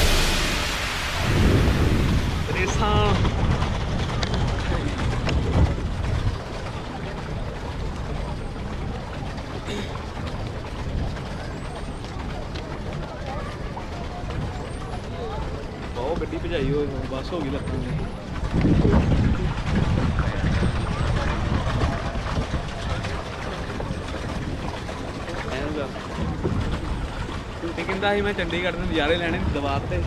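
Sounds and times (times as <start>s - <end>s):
water washing around boat: 0.0s - 30.0s
wind buffeting microphone: 0.0s - 30.0s.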